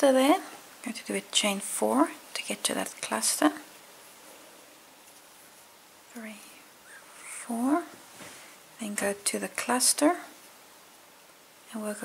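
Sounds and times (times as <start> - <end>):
woman speaking softly: 0.0 - 3.7, 6.1 - 6.6, 7.2 - 8.0, 8.8 - 10.3, 11.7 - 12.0
room hiss: 0.0 - 12.0.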